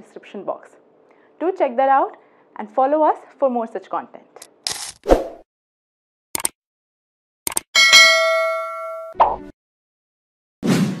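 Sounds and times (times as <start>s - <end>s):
notification bell ding: 7.8s - 9.2s.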